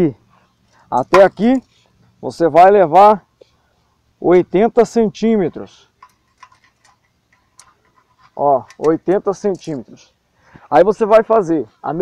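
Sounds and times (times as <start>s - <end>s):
faint ticks and taps of measuring: 5.9s - 9.8s.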